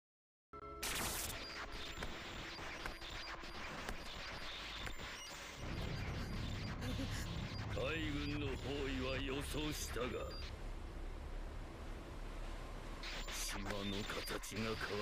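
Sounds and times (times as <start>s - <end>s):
dense noisy crackling: 0.8s - 15.0s
deep rumble: 5.6s - 13.0s.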